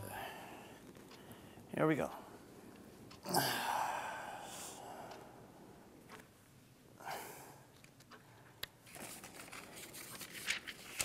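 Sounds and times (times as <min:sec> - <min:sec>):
rustling and handling noises: 0:07.8 - 0:11.0.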